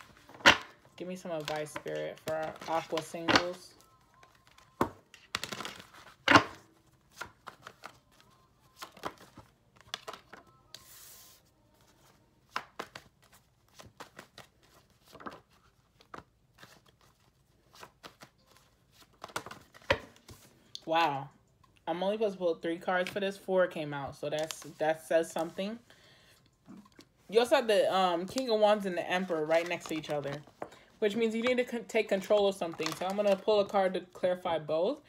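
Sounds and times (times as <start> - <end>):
cards being shuffled by hand: 4.2 - 20.6, 28.2 - 33.7.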